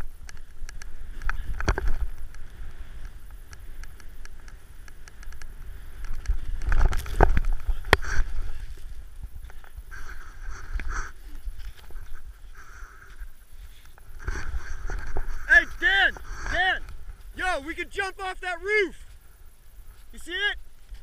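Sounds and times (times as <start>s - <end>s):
wind buffeting microphone: 0.0s - 17.9s
snowboard riding through powder: 0.8s - 17.6s.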